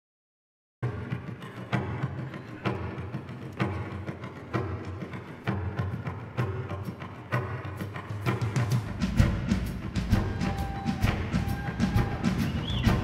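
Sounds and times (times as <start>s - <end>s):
frame drum steady rhythm: 0.9s - 13.0s.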